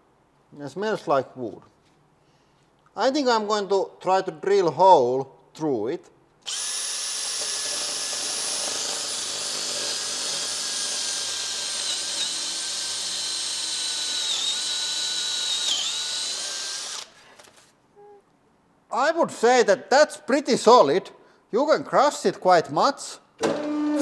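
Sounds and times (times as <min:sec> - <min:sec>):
drill boring through wood: 0:06.4 - 0:17.2.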